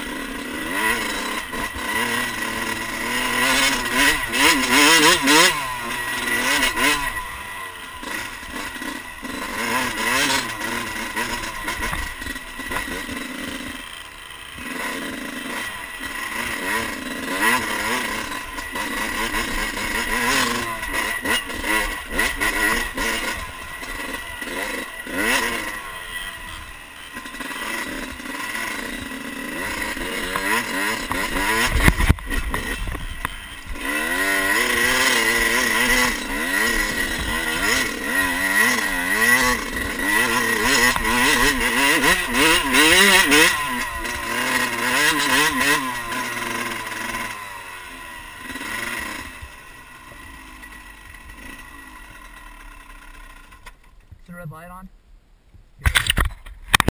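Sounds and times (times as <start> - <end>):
dirt bike engine revving: 0.0 - 54.7.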